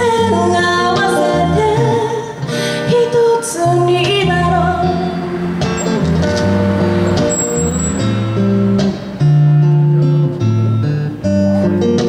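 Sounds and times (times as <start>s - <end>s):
guitar chords: 0.0s - 12.0s
bass notes: 3.6s - 12.0s.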